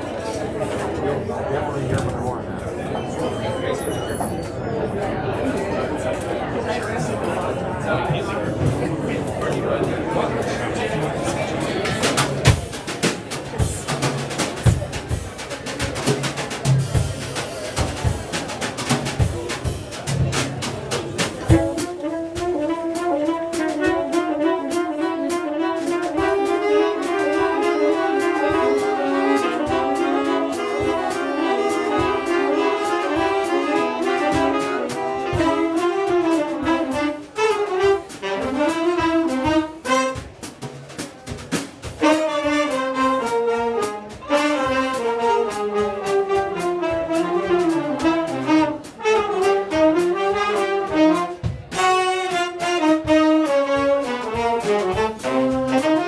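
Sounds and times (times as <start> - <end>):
jazz big band playing: 0.0 - 2.2, 5.6 - 56.0.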